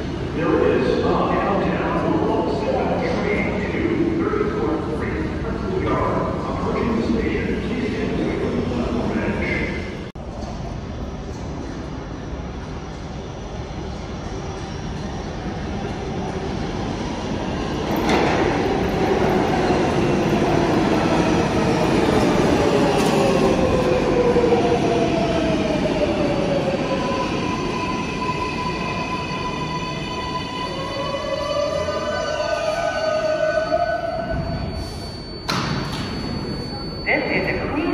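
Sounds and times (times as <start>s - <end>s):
subway train rumble and wheel noise: 0.0s - 37.9s.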